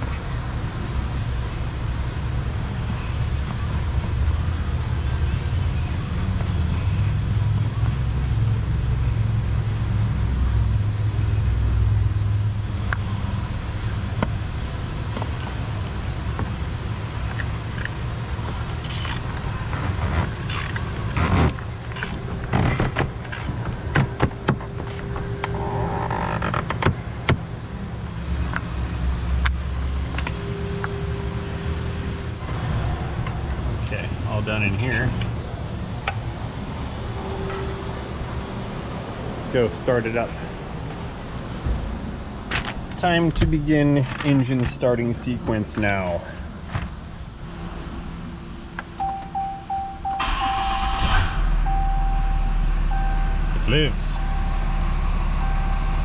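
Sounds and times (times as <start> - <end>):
steady low rumble: 0.0 - 48.9, 49.8 - 56.0.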